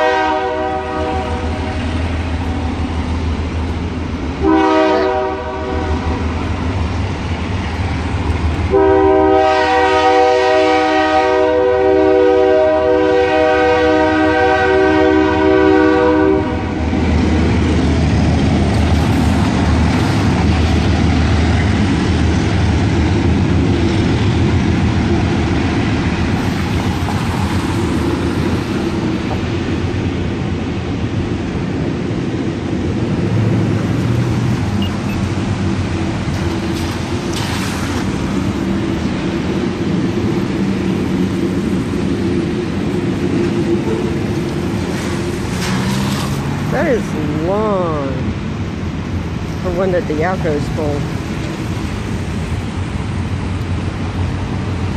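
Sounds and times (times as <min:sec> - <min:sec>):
locomotive air horn blasts: 0:00.0 - 0:01.6, 0:04.4 - 0:06.2, 0:08.7 - 0:16.8
train rumbling past: 0:00.0 - 0:54.9.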